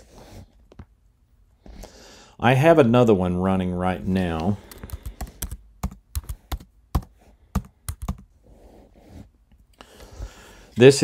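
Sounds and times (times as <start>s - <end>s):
computer keyboard typing: 4.7s - 8.3s.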